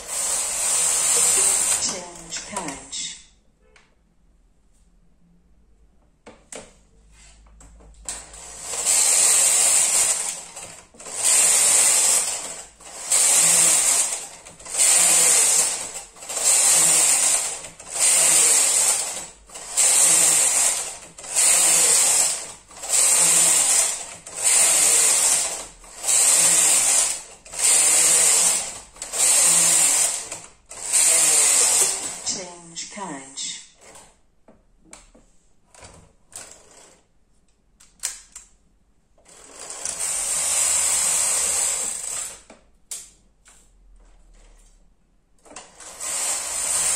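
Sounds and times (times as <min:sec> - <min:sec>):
knitting machine carriage clattering: 0:00.1 - 0:02.8, 0:08.0 - 0:32.4.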